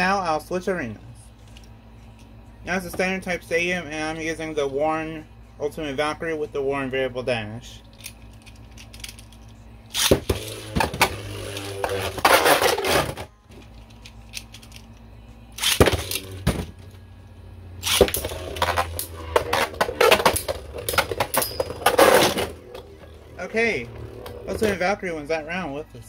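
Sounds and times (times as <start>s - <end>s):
tops spinning: 9.9s - 15.0s, 17.7s - 25.4s.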